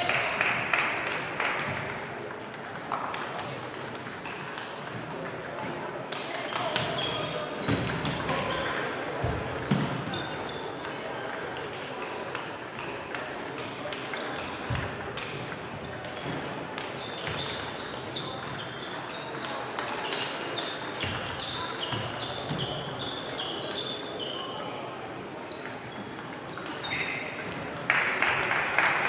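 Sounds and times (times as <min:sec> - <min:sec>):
table tennis balls clicking: 0:00.5 - 0:07.1.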